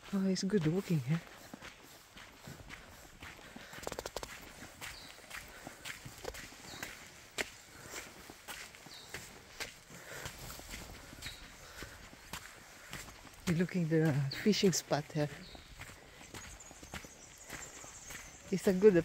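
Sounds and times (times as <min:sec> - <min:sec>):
footsteps on dirt and leaf litter: 0:00.0 - 0:19.0
sharp clicks: 0:03.8 - 0:04.4.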